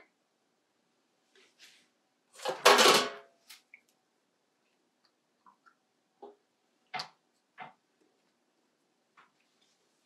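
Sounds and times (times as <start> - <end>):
metal tray scraping and clattering: 2.4 - 3.2.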